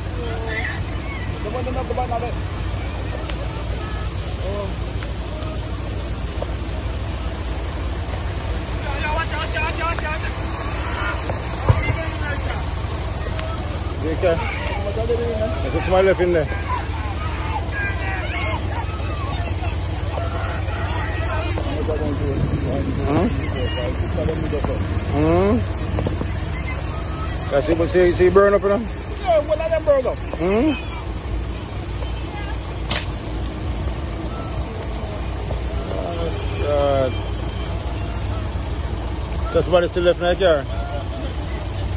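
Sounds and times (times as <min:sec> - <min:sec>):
distant people calling out: 0:00.0 - 0:41.9
low outdoor rumble: 0:00.0 - 0:41.9.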